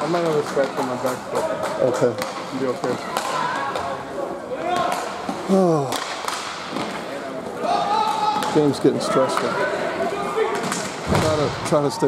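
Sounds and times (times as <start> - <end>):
hockey sticks clacking puck: 0.0 - 9.6, 10.4 - 11.3
players shouting: 7.5 - 12.0.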